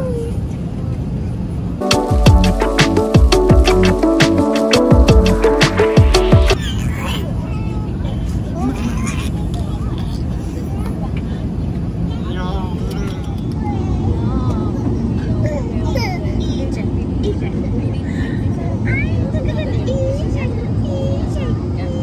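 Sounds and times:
faint voices: 6.5 - 22.0.

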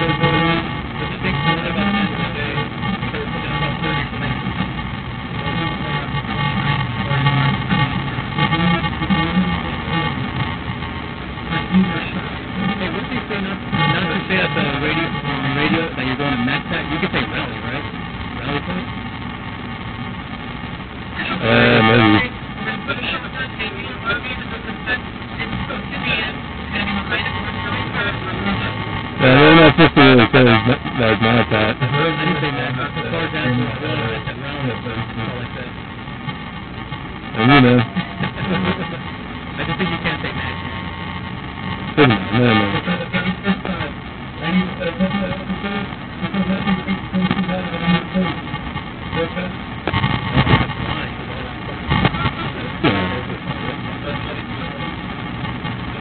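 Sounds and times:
steady background hum: 0.0 - 56.0
loud bursts of unintelligible voice: 21.2 - 35.8, 36.8 - 40.8, 41.7 - 56.0.

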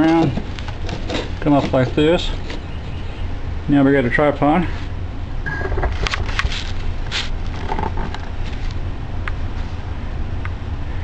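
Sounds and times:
low hum: 4.9 - 11.0.

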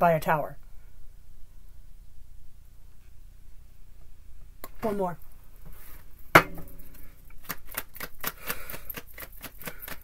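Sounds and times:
cards being shuffled by hand: 7.4 - 10.0.

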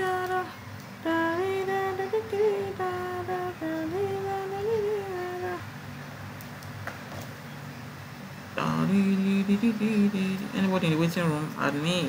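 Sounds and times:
woman humming: 0.0 - 5.6, 8.6 - 10.6
faint clicks: 0.2 - 0.9.

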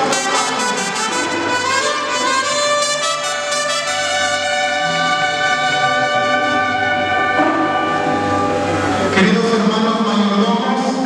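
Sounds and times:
brass band playing chord: 0.0 - 10.6.

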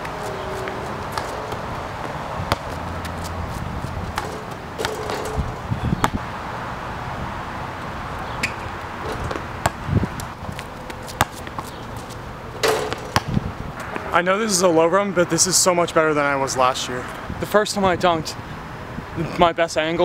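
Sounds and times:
basketball bouncing on hard court: 1.1 - 2.8, 4.0 - 6.2, 8.4 - 10.3, 11.1 - 11.8, 12.6 - 13.5.

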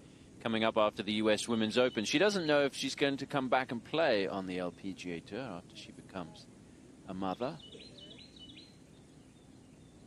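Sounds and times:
outdoor background hush: 0.0 - 10.0
high bird chirps: 1.6 - 2.8, 7.2 - 10.0.

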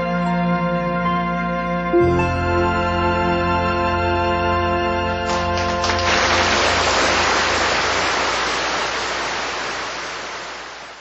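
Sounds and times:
hiss-like wash of noise: 5.8 - 11.0.

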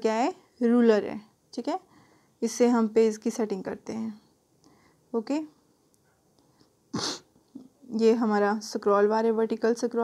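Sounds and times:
short sharp breath: 1.9 - 2.4, 4.6 - 5.1.

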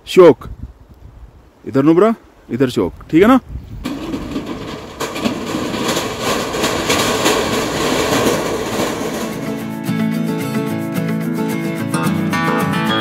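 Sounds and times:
vehicle crossing steel bridge: 3.8 - 10.0
bridge deck rattling: 3.8 - 10.6
music: 9.2 - 13.0.

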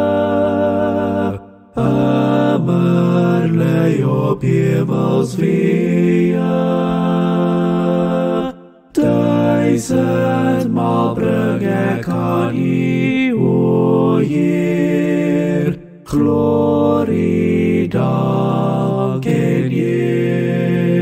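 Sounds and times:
man singing a cappella harmony: 0.0 - 21.0.

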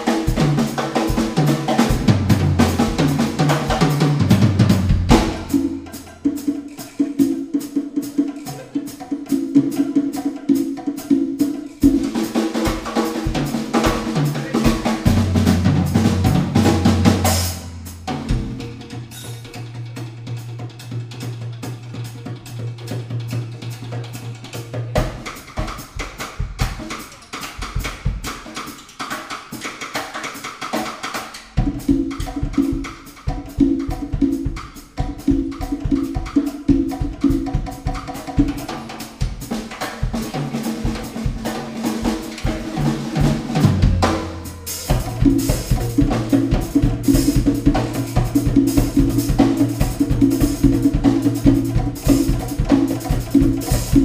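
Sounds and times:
drum kit groove: 0.0 - 54.0
live band playing: 0.0 - 54.0.

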